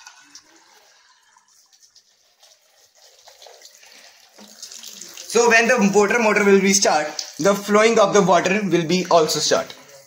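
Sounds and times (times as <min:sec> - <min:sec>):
water trickling into plastic tank: 0:00.0 - 0:10.0.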